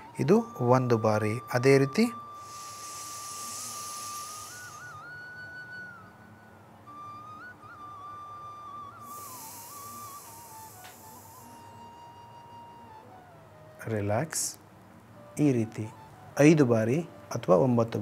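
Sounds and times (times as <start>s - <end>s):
slow background music: 0.0s - 18.0s
hissing breaths through nose: 2.4s - 5.1s, 9.0s - 11.8s.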